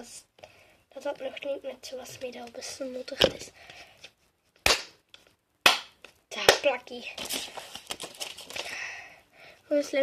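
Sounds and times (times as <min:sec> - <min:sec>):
slimy hands slapping: 0:04.6 - 0:06.8.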